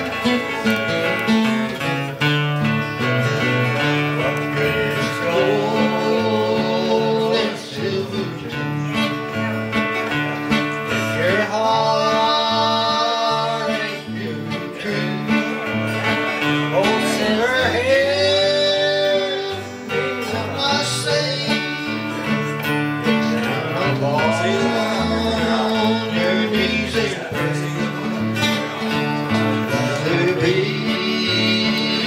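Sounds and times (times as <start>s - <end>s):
strummed guitars: 0.0s - 32.0s.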